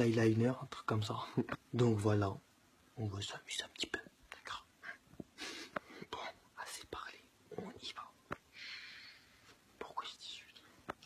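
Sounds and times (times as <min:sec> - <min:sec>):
man whispering: 0:00.0 - 0:02.4, 0:03.0 - 0:05.1, 0:06.0 - 0:08.4, 0:09.8 - 0:11.0.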